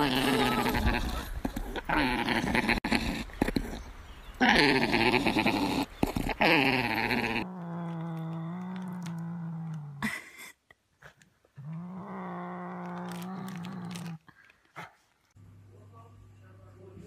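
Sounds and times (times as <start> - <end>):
cat growling: 0.0 - 10.1, 11.6 - 14.3.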